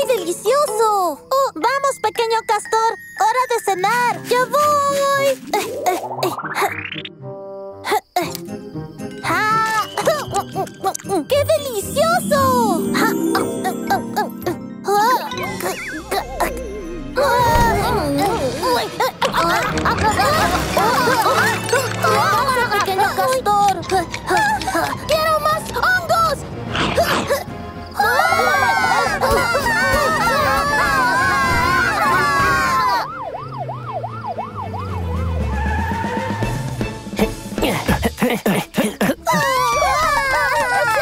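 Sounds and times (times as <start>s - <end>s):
children's background music: 0.0s - 33.4s, 34.0s - 41.0s
cartoon police siren wailing: 28.6s - 36.6s.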